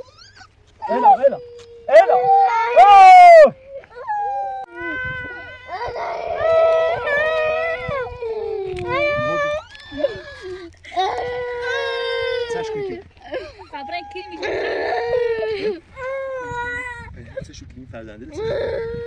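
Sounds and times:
child crying and wailing: 0.0 - 17.2, 18.3 - 19.0.

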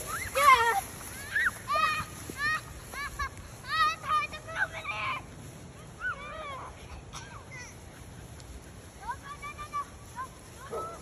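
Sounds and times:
children shouting in the distance: 8.8 - 11.0.

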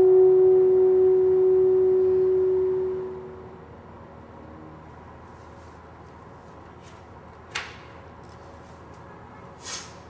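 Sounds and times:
alto saxophone note: 0.0 - 3.8
piano note: 0.0 - 5.2.

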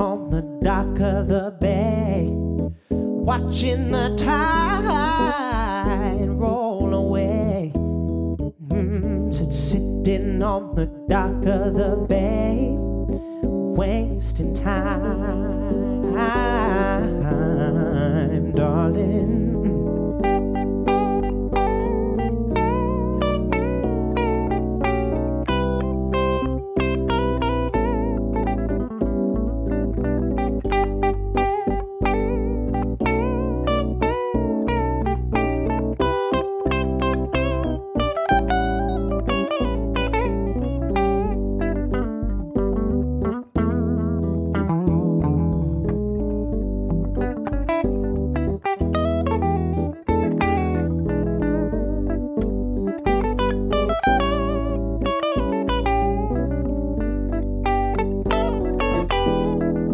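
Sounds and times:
bass guitar: 0.0 - 59.9
electric guitar lead lines: 0.0 - 59.9
keyboard chords: 0.0 - 59.9.

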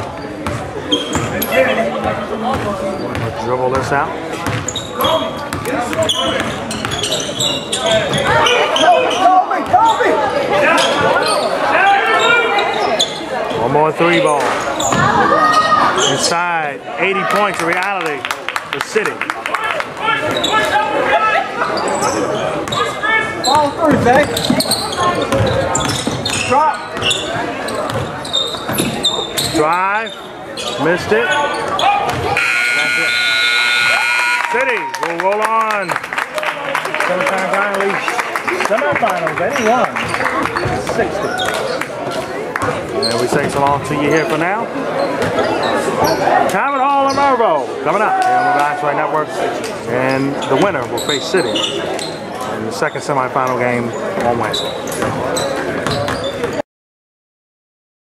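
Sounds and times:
sneakers squeaking: 0.0 - 13.6, 14.4 - 16.3, 20.0 - 20.8, 21.6 - 34.4, 39.6 - 47.4, 50.1 - 56.6
players calling out: 19.1 - 44.3
scoreboard buzzer: 32.4 - 34.8.

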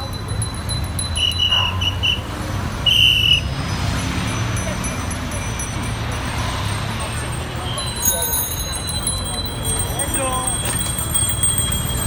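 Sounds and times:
road noise rumble: 0.0 - 12.0
shrill whistle blasts: 1.2 - 3.5.

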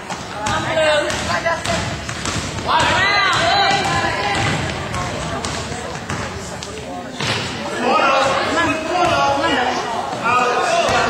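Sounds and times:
spectators chattering: 0.0 - 11.0
basketball bouncing on gym floor: 0.1 - 7.5.

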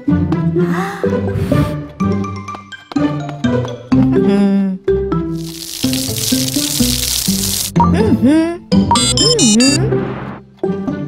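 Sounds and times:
cartoon background music: 0.0 - 11.0
water spraying from a hose: 5.4 - 7.8.

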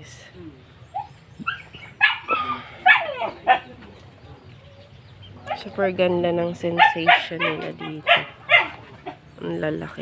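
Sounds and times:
dog barking sharp yelps: 1.0 - 3.7, 6.8 - 8.8.

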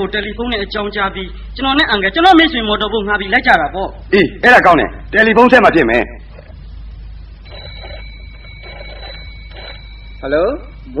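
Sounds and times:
high electronic telephone tone: 7.4 - 11.0.

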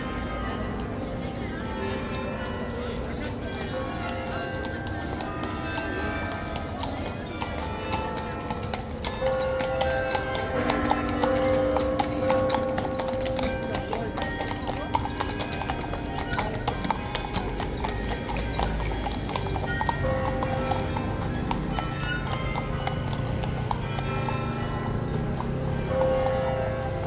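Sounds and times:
crowd chatter: 0.0 - 26.0
hooves clip-clopping on cobblestones: 0.0 - 27.0.

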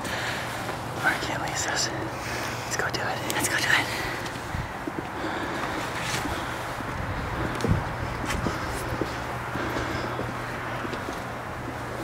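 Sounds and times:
steady low hum: 0.0 - 12.0
footsteps on snow: 4.2 - 12.0.

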